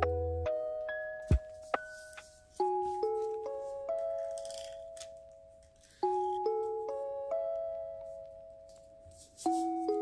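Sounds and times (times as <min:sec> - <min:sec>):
paper rustling and scraping: 0:09.1 - 0:09.9.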